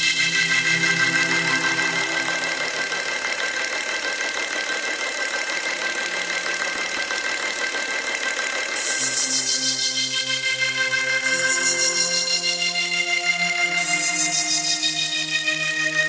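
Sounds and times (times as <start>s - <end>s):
electronic beat with bass: 0.0s - 3.2s
buzzing electronic music: 0.0s - 4.4s, 8.8s - 16.0s.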